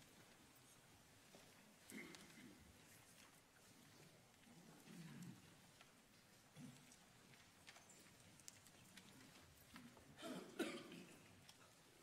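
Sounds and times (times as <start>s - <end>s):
faint small clicks: 1.8s - 10.0s
person coughing: 10.2s - 11.2s.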